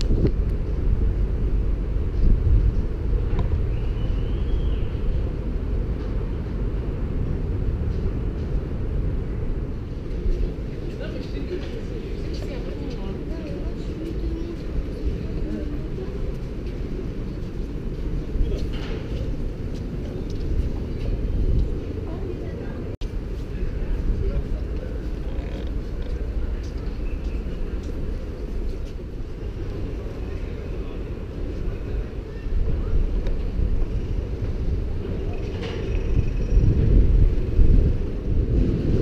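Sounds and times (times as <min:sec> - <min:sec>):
low rumble of wind: 0:00.0 - 0:39.0.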